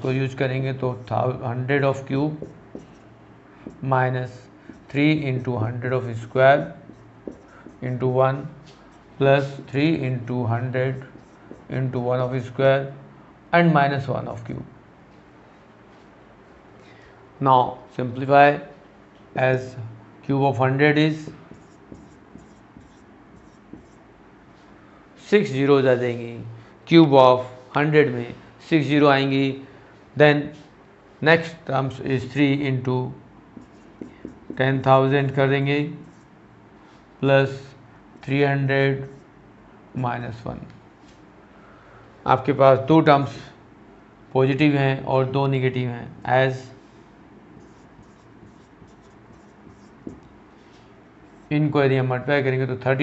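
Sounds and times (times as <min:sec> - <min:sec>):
marker writing on whiteboard: 0:00.9 - 0:10.3, 0:10.9 - 0:12.6, 0:21.1 - 0:24.1, 0:33.6 - 0:34.9, 0:36.0 - 0:36.3, 0:47.6 - 0:50.3, 0:51.2 - 0:51.6.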